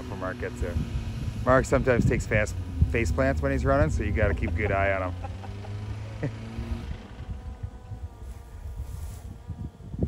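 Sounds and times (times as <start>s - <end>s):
wind rumbling on microphone: 0.0s - 4.8s, 6.7s - 10.0s
distant car engine revving: 0.0s - 8.8s.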